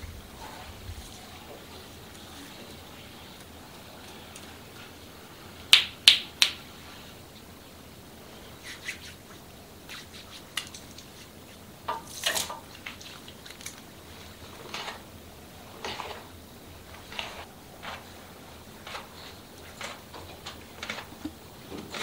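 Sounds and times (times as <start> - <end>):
hands handling wet hair: 8.6 - 22.0.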